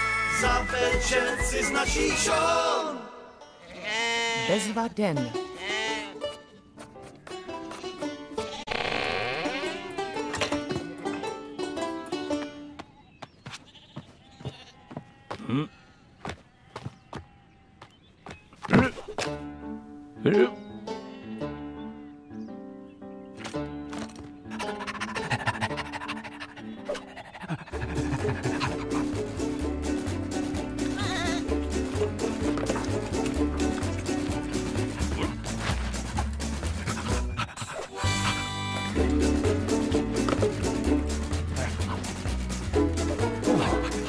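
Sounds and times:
cartoon theme music: 0.0 - 3.3, 27.7 - 44.0
sheep bleating: 3.6 - 4.8, 5.5 - 6.2, 8.4 - 10.1, 13.7 - 16.0, 30.8 - 31.5.

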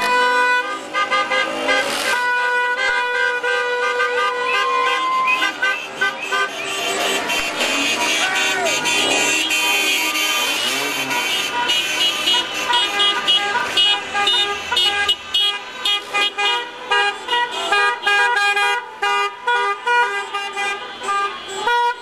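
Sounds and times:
car horns honking: 0.0 - 22.0.

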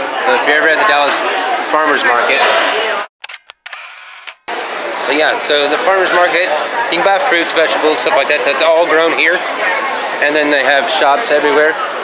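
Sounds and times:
crowd chatter indoors: 0.0 - 3.1, 4.5 - 12.0.

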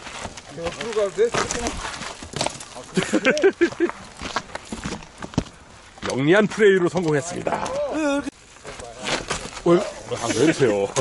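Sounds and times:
short scuffing rustle: 0.0 - 3.1, 3.7 - 6.7
people talking indistinctly: 6.0 - 11.0.

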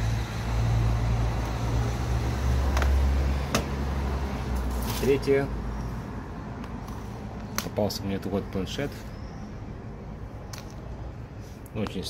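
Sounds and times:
vehicle engine humming: 0.0 - 7.7.

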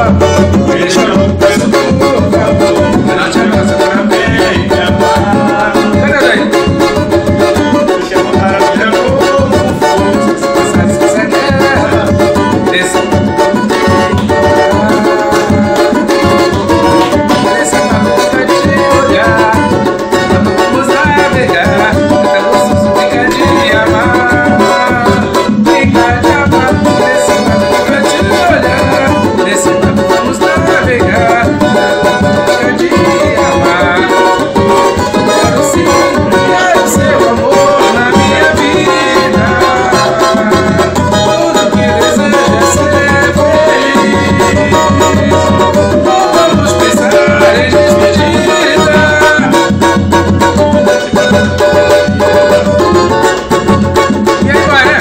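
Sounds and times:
banjo strummed in fast rhythm: 0.0 - 55.0
hand drum beating: 0.0 - 55.0
person singing: 0.0 - 55.0.

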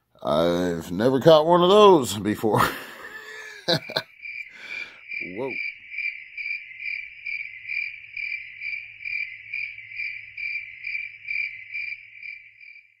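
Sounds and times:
cricket chirping: 2.6 - 13.0.

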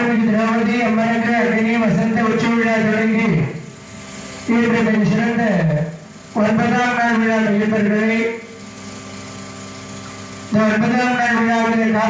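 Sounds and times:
steady hum with held tones: 0.0 - 12.0
man chanting into a microphone: 10.5 - 12.0.

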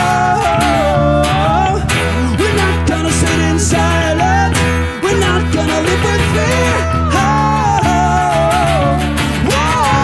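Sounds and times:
electric bass: 0.0 - 10.0
strummed acoustic guitar: 0.0 - 10.0.

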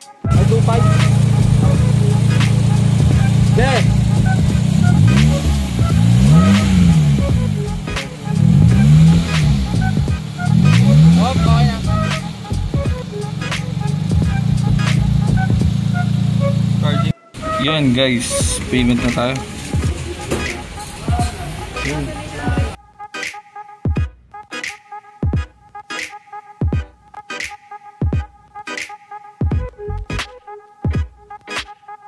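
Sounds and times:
car engine idling and revving: 0.3 - 22.8.

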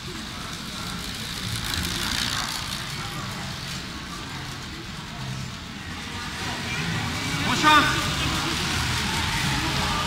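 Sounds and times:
bicycle tyres whooshing: 0.0 - 5.5
low murmur in hall: 0.0 - 10.0.

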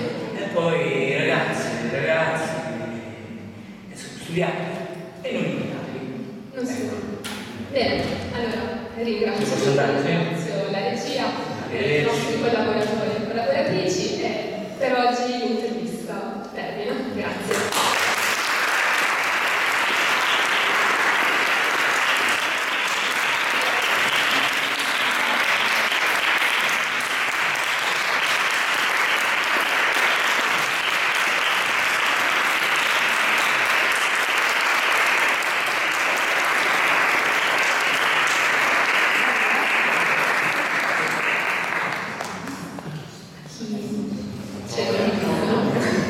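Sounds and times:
audience applauding: 17.5 - 42.7.

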